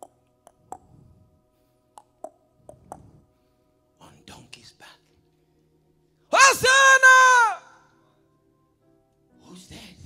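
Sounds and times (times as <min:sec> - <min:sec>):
man shouting high-pitched: 0:06.3 - 0:07.8.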